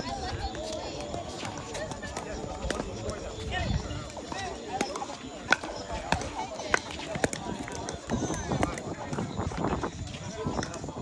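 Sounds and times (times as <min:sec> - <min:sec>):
voices chattering: 0:00.0 - 0:11.0
paddles hitting plastic ball: 0:04.0 - 0:09.3.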